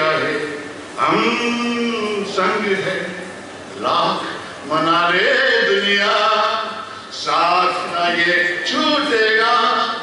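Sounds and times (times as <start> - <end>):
man singing into microphone: 0.0 - 10.0.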